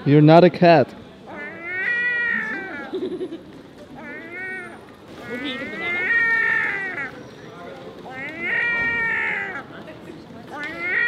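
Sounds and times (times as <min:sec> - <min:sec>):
gull mewing cries: 0:01.3 - 0:03.2, 0:04.0 - 0:07.2, 0:08.0 - 0:09.7, 0:10.6 - 0:11.0.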